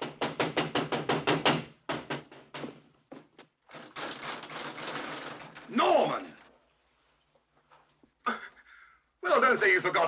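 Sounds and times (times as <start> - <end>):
knocking on a door: 0.0 - 2.9.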